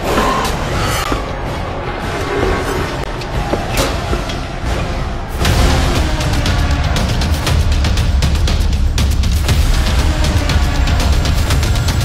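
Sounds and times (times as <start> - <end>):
dramatic music: 0.0 - 12.0.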